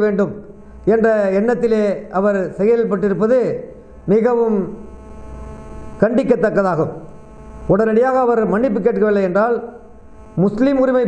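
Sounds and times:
man speaking: 0.0s - 4.8s, 6.0s - 7.1s, 7.7s - 9.8s, 10.4s - 11.0s
electrical mains hum: 0.0s - 11.0s.

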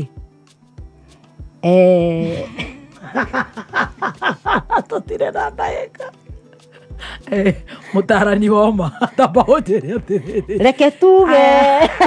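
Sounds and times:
person chuckling: 2.2s - 7.7s, 8.9s - 10.6s, 11.3s - 12.0s.

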